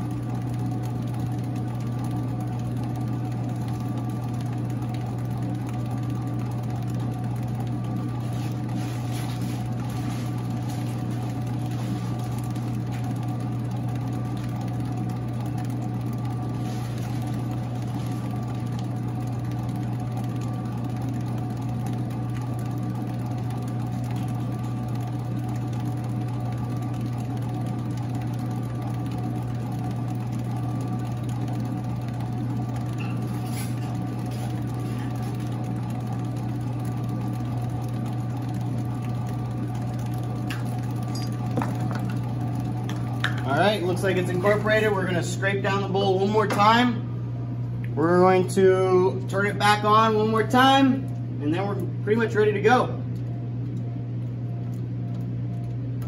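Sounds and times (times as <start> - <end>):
mixer motor humming: 0.0 - 56.0.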